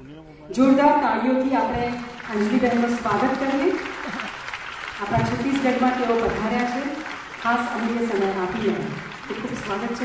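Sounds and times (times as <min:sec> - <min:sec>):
audience applauding: 0:01.7 - 0:10.0.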